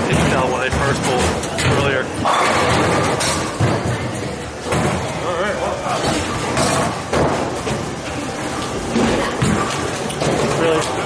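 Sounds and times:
bowling balls rolling: 0:06.1 - 0:11.0.

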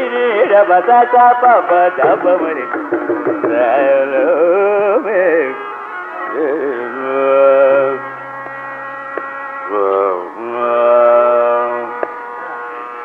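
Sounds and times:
long-held sung notes: 0:03.5 - 0:13.0.

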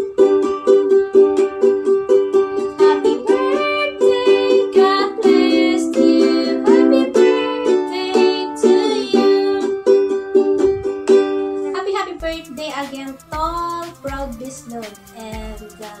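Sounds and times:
ukulele strumming: 0:00.0 - 0:16.0
woman singing: 0:02.7 - 0:09.8, 0:12.1 - 0:16.0.

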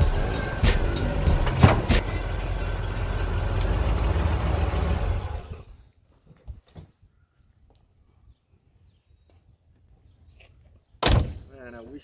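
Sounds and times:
car door slamming: 0:00.1 - 0:02.1.

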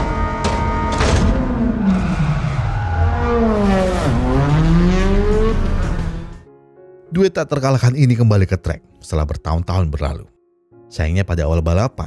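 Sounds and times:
car engine revving: 0:00.0 - 0:06.4.

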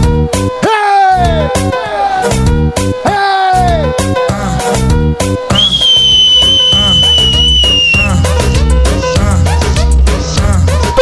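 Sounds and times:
dance music with pounding beat: 0:01.2 - 0:11.0
long high whistle: 0:05.5 - 0:08.6.

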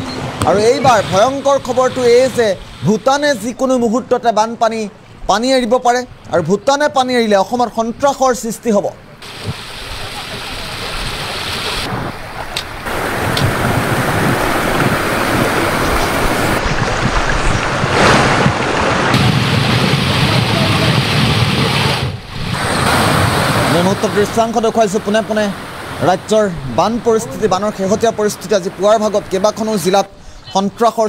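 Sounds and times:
water rushing: 0:00.0 - 0:06.2, 0:08.6 - 0:31.0
wind on microphone: 0:09.2 - 0:24.3.

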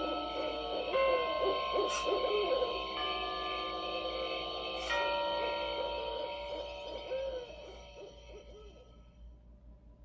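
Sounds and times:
owl hooting: 0:00.0 - 0:05.0, 0:05.8 - 0:09.0
eerie drone of held tones: 0:00.0 - 0:09.5.

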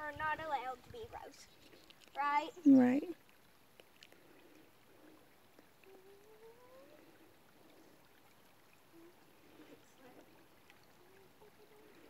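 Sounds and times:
feet wading in shallow water: 0:03.1 - 0:12.0.

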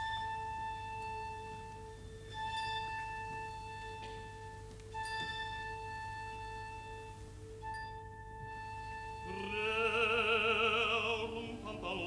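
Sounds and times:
orchestra holding notes: 0:00.0 - 0:12.0
person singing: 0:09.2 - 0:12.0.

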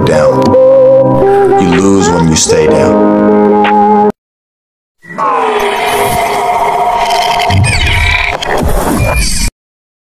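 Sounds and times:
background music: 0:00.0 - 0:04.2.

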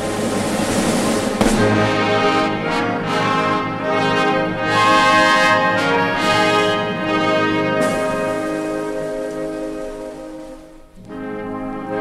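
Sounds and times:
orchestra sustained chord: 0:00.0 - 0:12.0.

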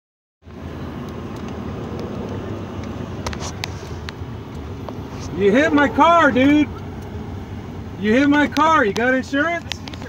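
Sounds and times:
car cabin road rumble: 0:00.4 - 0:10.0.

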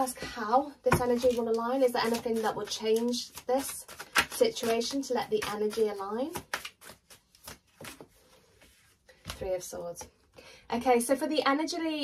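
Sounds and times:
cards being shuffled: 0:01.0 - 0:09.4.

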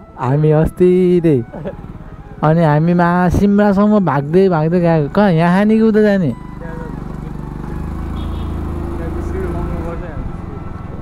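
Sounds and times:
motor scooter engine droning: 0:05.0 - 0:11.0.

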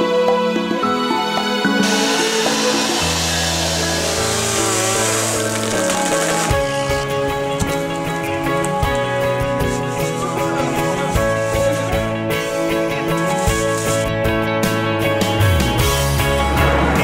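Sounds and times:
background music with bass: 0:00.0 - 0:17.0.

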